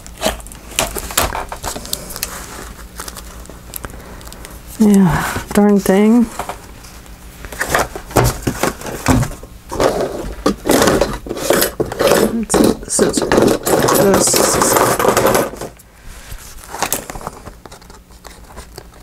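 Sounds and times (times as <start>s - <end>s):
paper rustling and crinkling: 0.0s - 5.6s, 16.2s - 19.0s.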